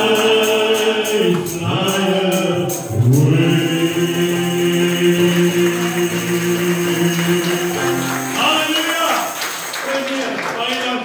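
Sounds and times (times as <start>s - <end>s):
group singing in harmony: 0.0s - 8.6s.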